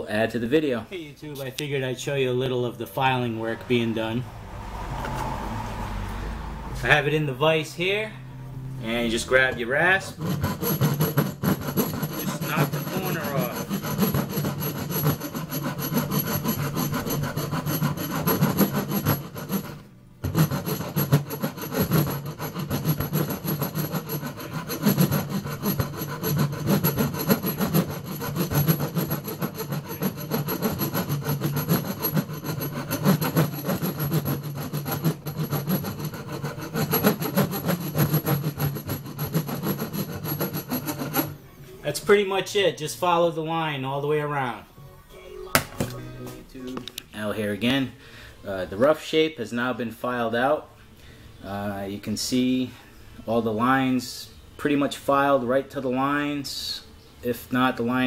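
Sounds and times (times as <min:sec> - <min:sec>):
hand rasp filing wood: 0:10.0 - 0:41.4.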